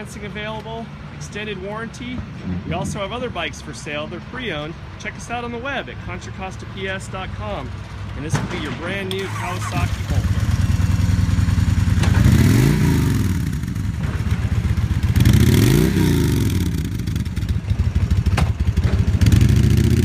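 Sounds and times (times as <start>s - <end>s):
motorcycle engine revving: 8.6s - 20.0s.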